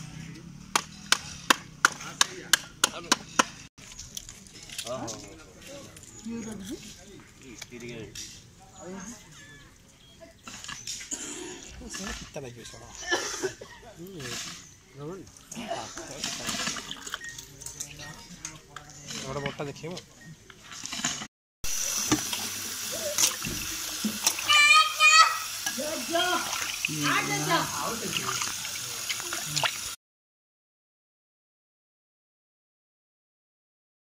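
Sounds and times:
tap water splashing into steel bowl: 0:22.0 - 0:22.5, 0:23.1 - 0:24.5
high-pitched voice calling out: 0:24.4 - 0:25.5
hands washing fish pieces: 0:25.4 - 0:30.0.

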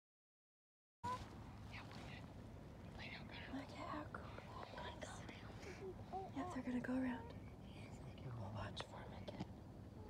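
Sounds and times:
hushed whispering: 0:02.9 - 0:09.5.

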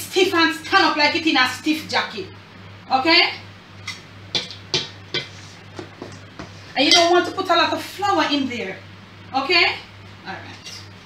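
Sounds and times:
whisk knocking against bowl: 0:04.3 - 0:06.2.

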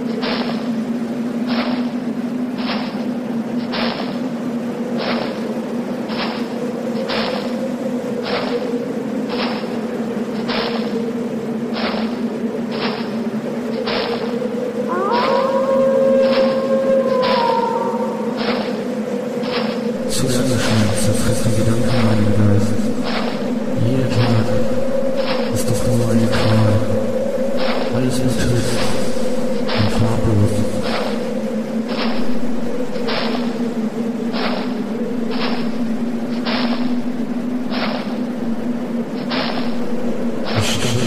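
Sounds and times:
droning tone: 0:00.0 - 0:41.0.

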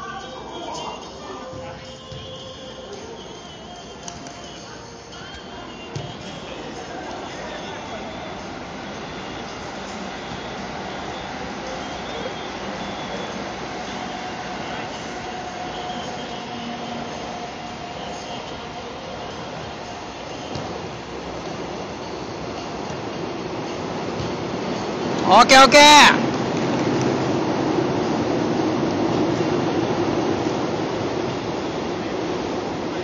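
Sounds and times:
city background rumble and hiss: 0:00.0 - 0:33.0.

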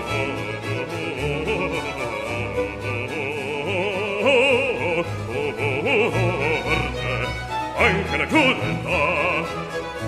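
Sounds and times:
bass-baritone singing florid run: 0:00.0 - 0:10.0
string orchestra: 0:00.0 - 0:10.0.

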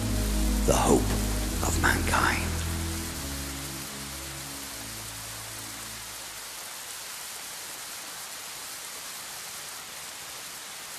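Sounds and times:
sustained keyboard chord: 0:00.0 - 0:04.4
steady rain-like hiss: 0:00.0 - 0:10.9.

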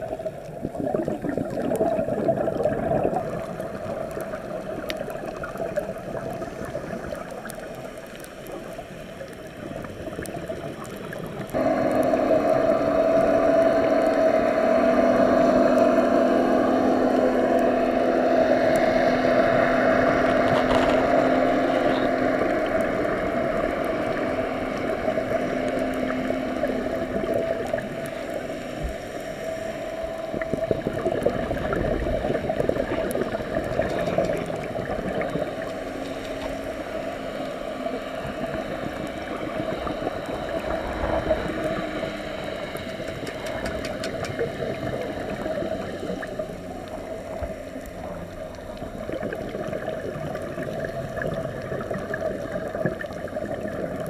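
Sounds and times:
underwater water noise: 0:00.0 - 0:54.0
steady mechanical drone: 0:02.7 - 0:54.0.

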